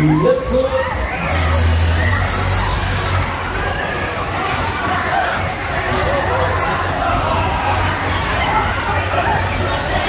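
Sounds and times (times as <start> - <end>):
deep low hum: 1.0 - 3.7.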